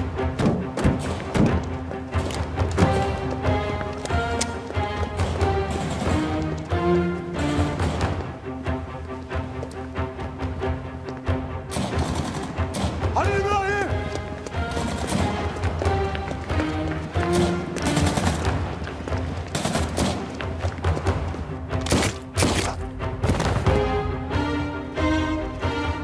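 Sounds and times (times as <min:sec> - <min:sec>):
dramatic film score music: 0:00.0 - 0:26.0
gunshots: 0:05.2 - 0:06.3, 0:11.7 - 0:13.1, 0:19.5 - 0:20.3.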